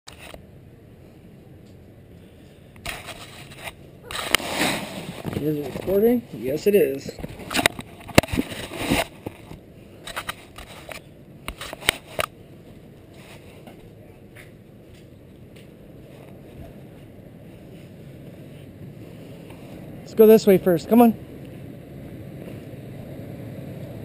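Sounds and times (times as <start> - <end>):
low outdoor rumble: 0.1 - 24.0
camera rubbing against clothing: 2.8 - 6.2, 7.2 - 12.3, 13.0 - 13.7.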